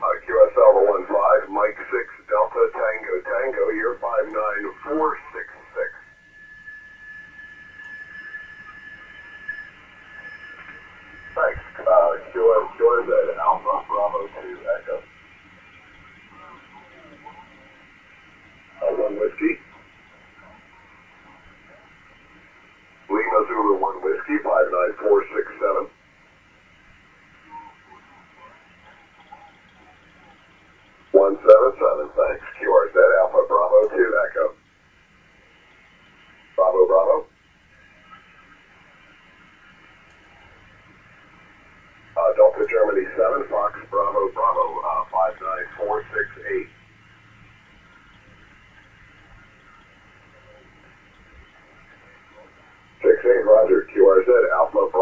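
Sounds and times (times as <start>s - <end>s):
thin radio voice: 0.0s - 6.0s, 10.6s - 15.1s, 18.8s - 19.7s, 23.1s - 25.9s, 31.2s - 34.6s, 36.6s - 37.3s, 42.2s - 46.7s, 51.8s - 55.0s
radio band hiss: 0.0s - 55.0s
faint carrier whistle: 6.1s - 11.4s.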